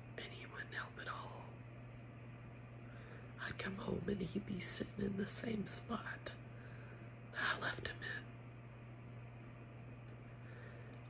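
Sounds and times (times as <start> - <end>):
low electrical hum: 0.0 - 11.0
woman whispering: 0.2 - 1.6, 3.4 - 6.4, 7.3 - 8.3.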